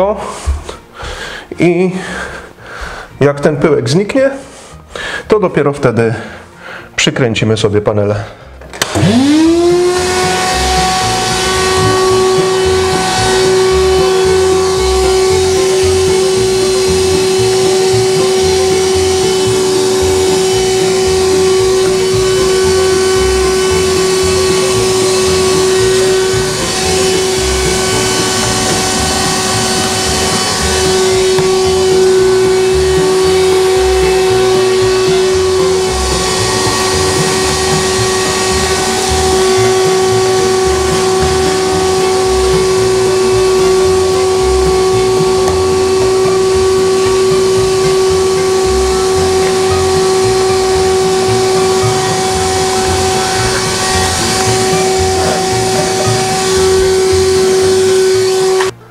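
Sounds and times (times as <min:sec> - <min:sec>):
vacuum cleaner whining: 0:00.0 - 0:06.9, 0:08.2 - 0:58.9.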